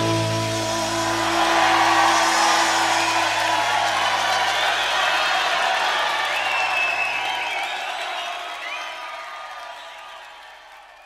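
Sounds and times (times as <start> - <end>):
held music notes: 0.0 - 4.1
audience applause and cheering: 0.0 - 11.0
high whoops: 0.0 - 11.0.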